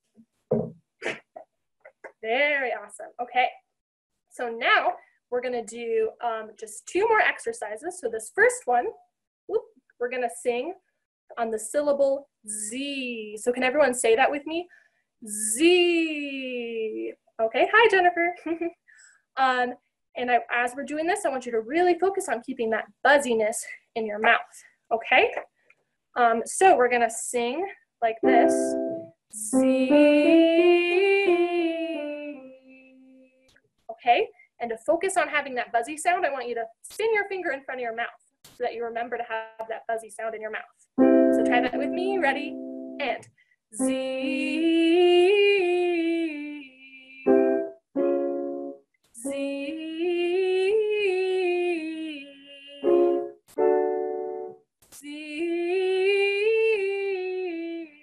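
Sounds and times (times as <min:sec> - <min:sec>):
keyboard chords: 0:28.2 - 0:32.8, 0:41.0 - 0:43.1, 0:47.3 - 0:49.4, 0:52.8 - 0:54.6
woman singing vocal warm-up: 0:28.2 - 0:33.2, 0:41.4 - 0:43.2, 0:43.8 - 0:47.6, 0:49.2 - 0:53.2, 0:55.0 - 0:58.0.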